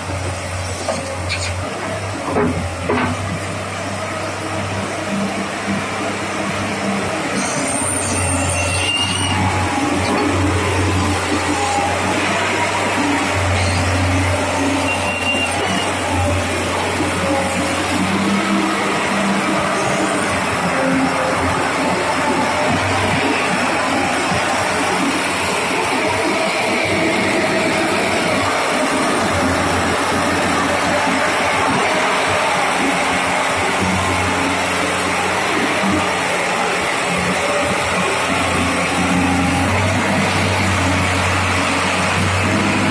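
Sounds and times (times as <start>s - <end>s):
excavator diesel engine running: 0.0s - 42.9s.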